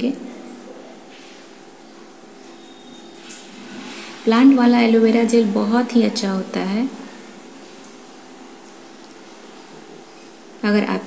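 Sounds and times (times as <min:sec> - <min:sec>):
background hum with hiss: 0:00.0 - 0:11.0.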